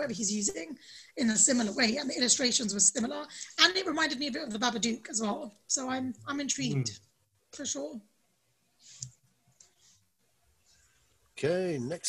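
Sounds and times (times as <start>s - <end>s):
soft hissy noises: 0.0s - 8.0s, 8.6s - 12.0s.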